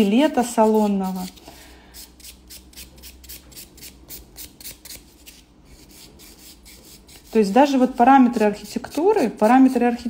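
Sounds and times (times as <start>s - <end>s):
nail buffer scrubbing fingernail: 0.1s - 1.4s, 2.0s - 10.0s.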